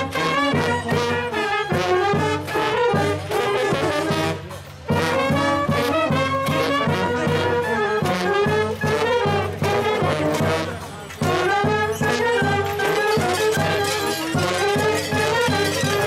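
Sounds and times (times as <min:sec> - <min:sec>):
brass band playing: 0:00.0 - 0:16.0.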